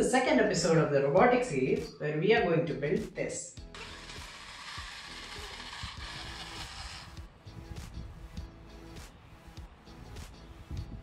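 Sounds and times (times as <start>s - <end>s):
faint background music: 0.0s - 11.0s
small gear motors hissing: 3.7s - 7.2s.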